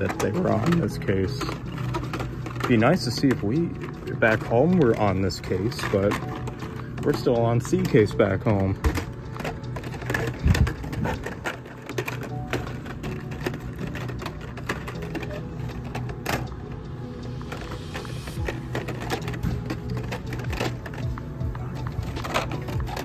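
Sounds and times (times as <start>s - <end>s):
background music: 0.0s - 23.0s
plastic packs clicking and rattling: 0.0s - 23.0s.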